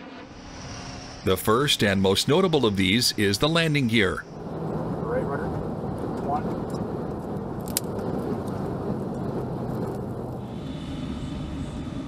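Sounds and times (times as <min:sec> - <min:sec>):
jet plane landing: 0:00.0 - 0:12.0
low steady hum: 0:00.3 - 0:12.0.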